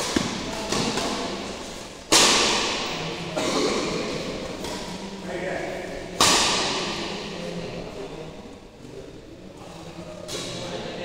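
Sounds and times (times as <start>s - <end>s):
racket striking shuttlecock: 2.1s - 2.9s.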